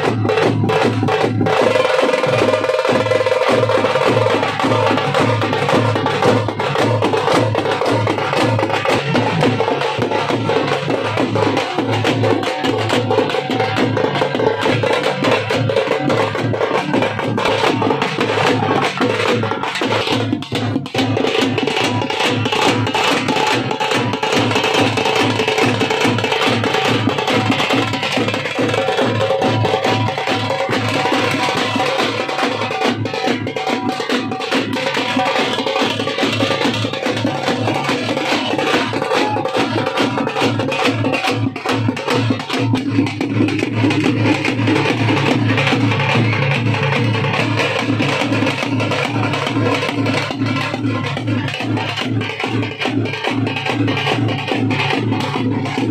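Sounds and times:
drums beaten with sticks: 0:00.0 - 0:55.9.

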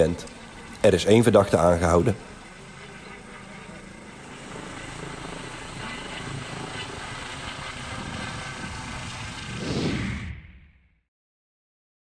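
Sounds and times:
helicopter rotor and engine: 0:00.0 - 0:09.7.

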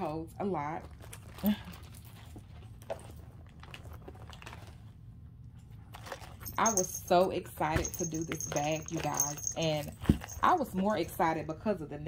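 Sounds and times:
handbag items clicking and rustling: 0:06.0 - 0:11.0.

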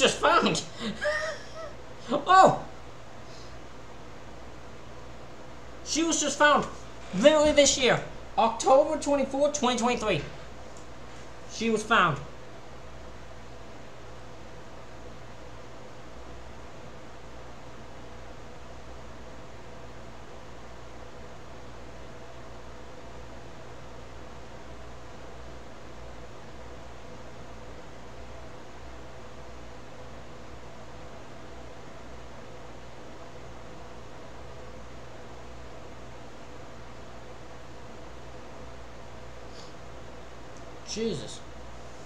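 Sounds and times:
faint constant hum: 0:00.0 - 0:42.0.

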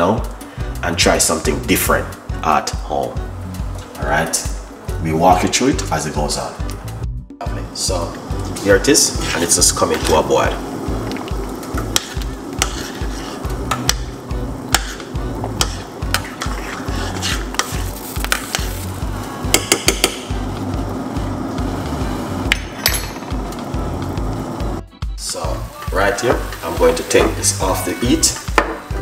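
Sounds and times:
background music with low beat: 0:00.0 - 0:29.0
metal spoon scraping saucepan: 0:09.1 - 0:10.3, 0:11.8 - 0:14.0, 0:14.7 - 0:18.6.

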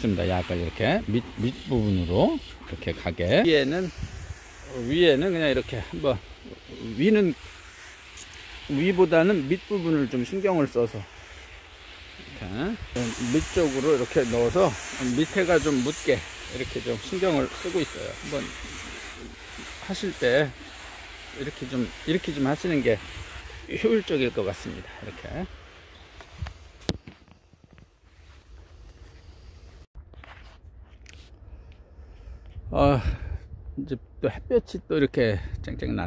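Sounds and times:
sprayer nozzle hissing: 0:00.0 - 0:27.4
cabbage leaves rustling: 0:00.0 - 0:29.4.

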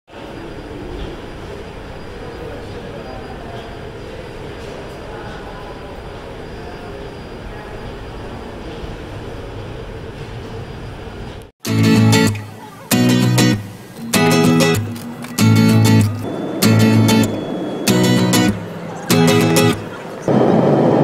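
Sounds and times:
airport terminal noise: 0:00.1 - 0:21.0
moving walkway rumbling: 0:08.3 - 0:21.0.

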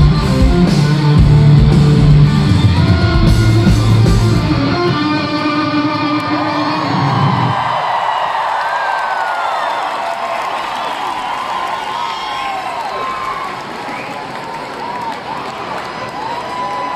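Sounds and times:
electric guitars and bass chord: 0:00.0 - 0:07.1
crowd cheering and screaming: 0:02.3 - 0:16.9.

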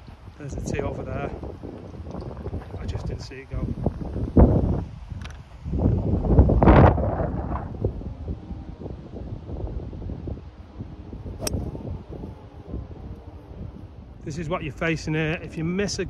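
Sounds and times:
wind buffeting microphone: 0:00.0 - 0:16.0
golf club striking ball: 0:11.4 - 0:11.7.

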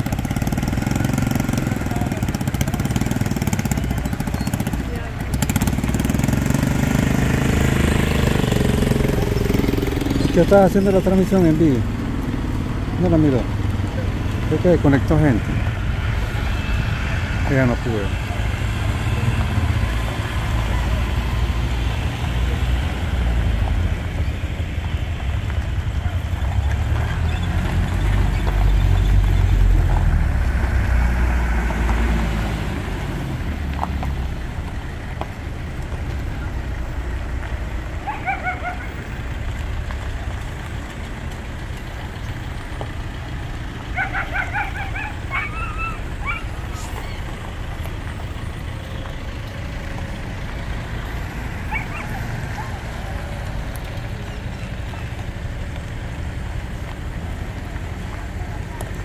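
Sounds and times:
vehicle engines passing slowly: 0:00.0 - 0:59.0.

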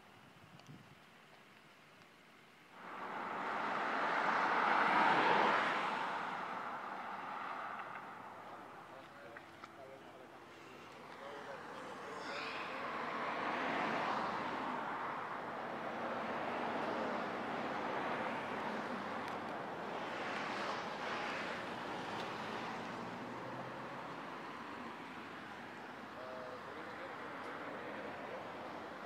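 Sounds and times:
road traffic passing: 0:02.6 - 0:29.0.

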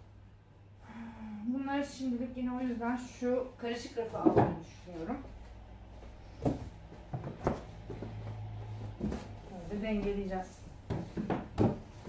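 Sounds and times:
books knocking and shuffling: 0:04.1 - 0:12.0.

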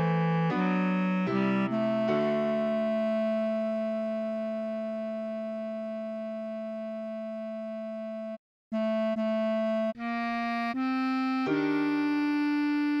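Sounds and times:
bass clarinet long note: 0:00.0 - 0:13.0.

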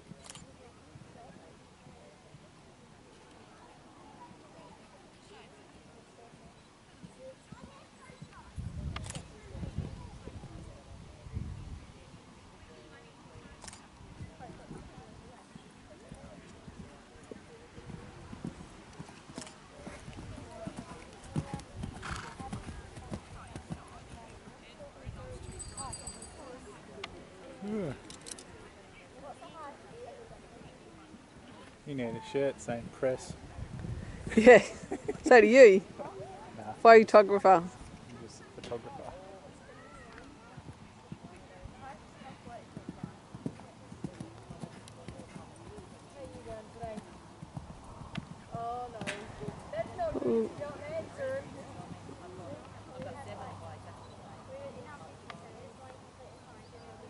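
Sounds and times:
faint voices: 0:00.0 - 0:57.0
horse hoofbeats on grass: 0:14.2 - 0:24.6.

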